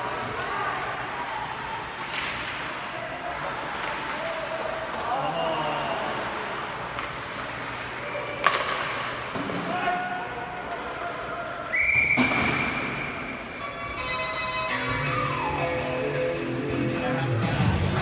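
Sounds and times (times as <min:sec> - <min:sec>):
ice rink ambience: 0:00.0 - 0:18.0
arena music: 0:13.6 - 0:18.0.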